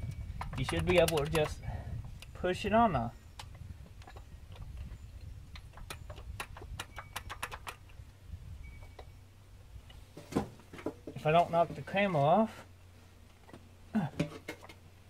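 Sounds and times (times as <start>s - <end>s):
metal parts clicking and tapping: 0.0s - 2.3s.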